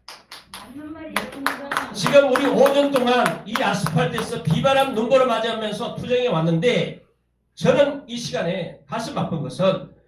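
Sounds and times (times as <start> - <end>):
audience clapping: 0.0 - 5.0
man's voice: 1.9 - 6.9.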